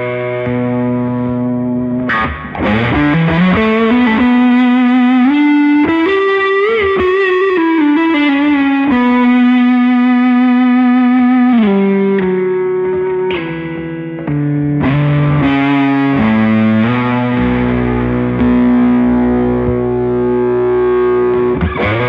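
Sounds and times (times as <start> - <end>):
overdriven electric guitar notes: 0.0 - 22.0.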